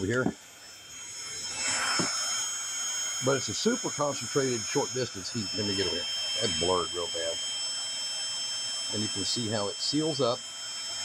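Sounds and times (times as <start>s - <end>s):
heat gun fan whine: 0.0s - 11.0s.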